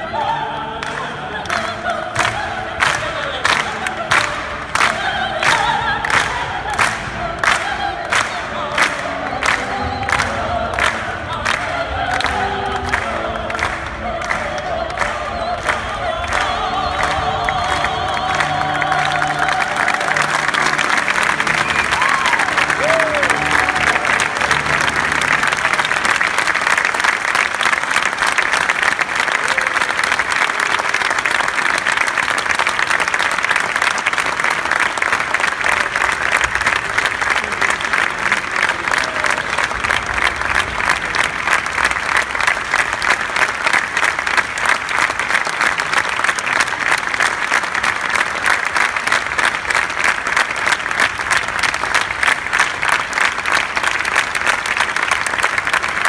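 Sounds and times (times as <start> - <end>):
audience applauding: 0.0 - 56.0.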